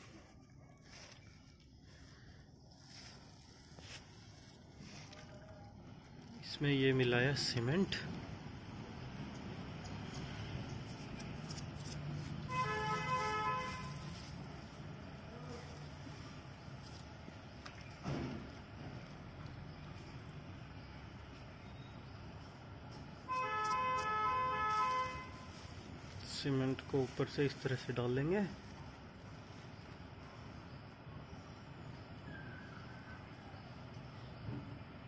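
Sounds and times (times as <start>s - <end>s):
vehicle horn tooting: 12.4s - 14.2s, 23.3s - 25.5s.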